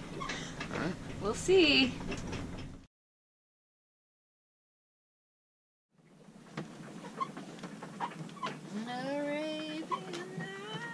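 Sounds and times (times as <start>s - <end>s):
low cabin background noise: 6.2s - 10.9s.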